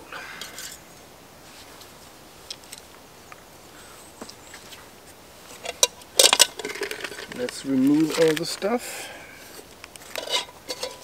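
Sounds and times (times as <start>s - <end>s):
clicks and knocks of cooking gear: 5.6s - 8.6s, 9.9s - 11.0s.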